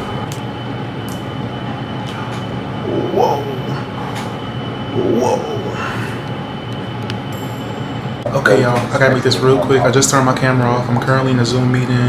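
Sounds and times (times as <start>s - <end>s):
mechanical drone with high whine: 0.0s - 12.0s.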